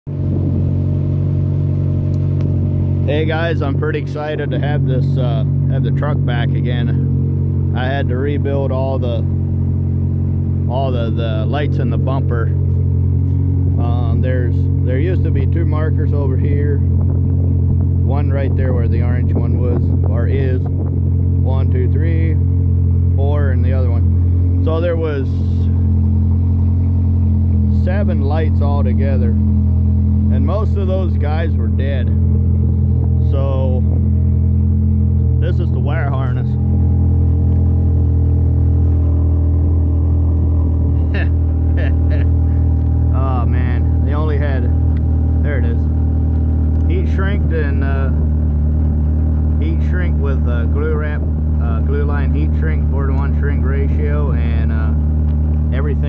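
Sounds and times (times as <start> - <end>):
truck engine idling: 0.1 - 56.0.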